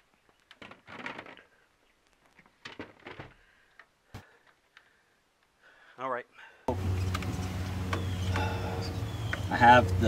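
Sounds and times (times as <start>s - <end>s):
clicks and knocks of plastic box: 0.5s - 1.5s, 2.6s - 3.4s.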